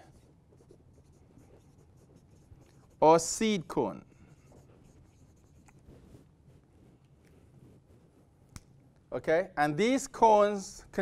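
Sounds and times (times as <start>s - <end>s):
whiteboard marker strokes: 0.0s - 8.5s.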